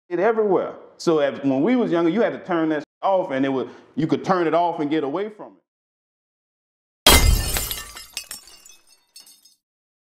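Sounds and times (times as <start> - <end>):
glass pieces tinkling: 7.1 - 9.6
glass shattering: 7.1 - 9.6.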